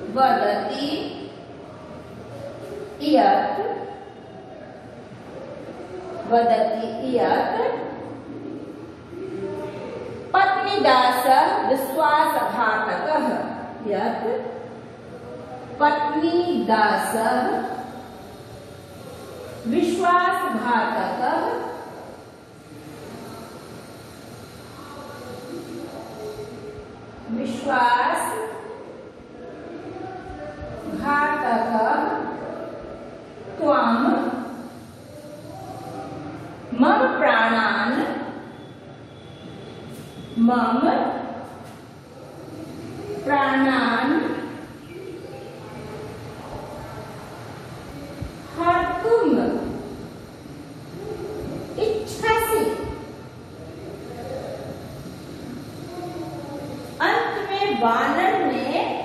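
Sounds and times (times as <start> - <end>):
room hum: 0.0 - 59.0.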